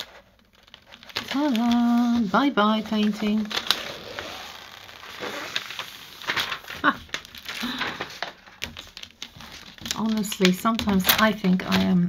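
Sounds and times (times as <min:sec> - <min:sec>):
plastic film crinkling: 0:00.0 - 0:12.0.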